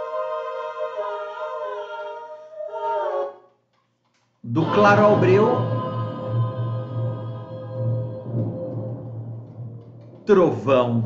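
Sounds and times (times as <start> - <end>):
women singing polyphonic chords: 0.0 - 3.4, 4.6 - 10.2.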